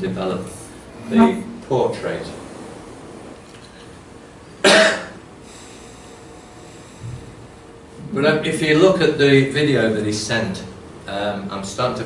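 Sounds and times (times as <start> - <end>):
person coughing: 4.6 - 5.2.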